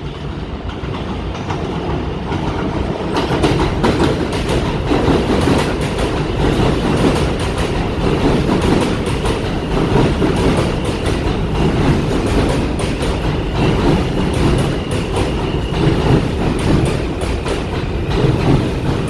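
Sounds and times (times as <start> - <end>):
subway train passing: 0.0 - 19.0
wheels clacking over rail joints: 0.7 - 19.0.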